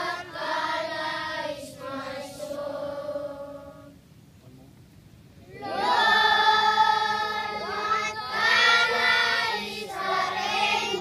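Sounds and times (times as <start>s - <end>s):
young children singing: 0.0s - 4.0s, 5.5s - 11.0s.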